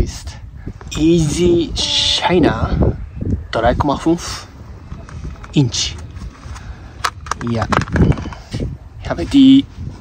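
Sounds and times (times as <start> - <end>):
man speaking: 0.0 - 4.6, 5.5 - 6.1.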